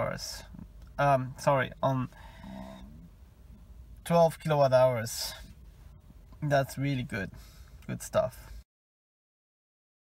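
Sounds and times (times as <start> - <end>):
faint low hum: 0.0 - 8.6.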